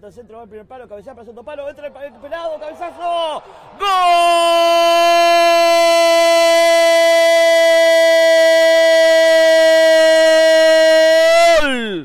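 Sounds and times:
commentator's drawn-out goal cry: 2.5 - 12.0.

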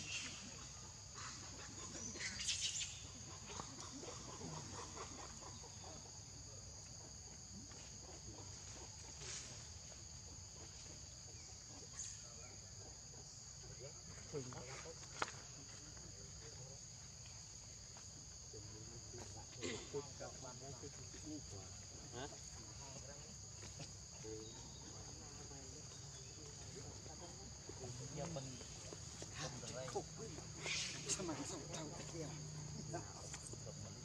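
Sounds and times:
insect trills: 0.0 - 34.0.

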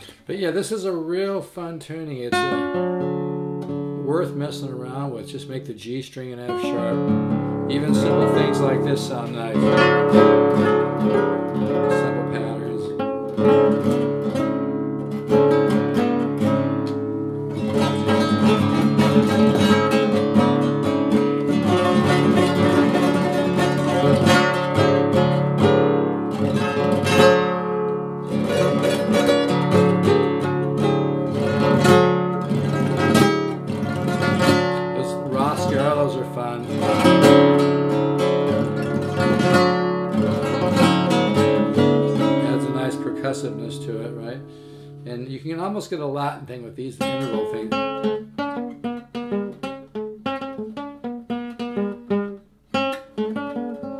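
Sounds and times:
classical guitar fingerpicking: 2.3 - 5.4, 6.4 - 45.2, 47.0 - 53.9.

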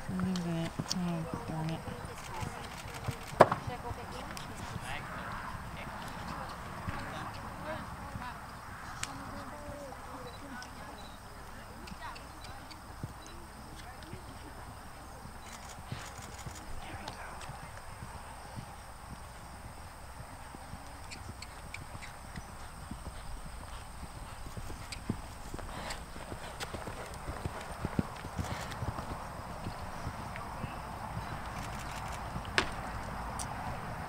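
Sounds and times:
horse hoofbeats on sand: 11.9 - 33.8.

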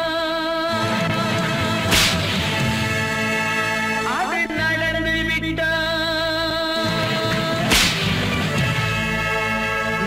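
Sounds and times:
film song music with held notes: 0.7 - 10.0
whip crack: 1.9 - 2.4, 7.7 - 8.4.

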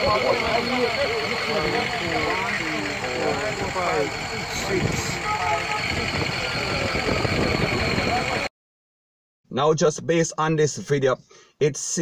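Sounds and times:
people talking: 0.0 - 8.5, 9.5 - 12.0
vehicle engine idling: 0.0 - 8.5.

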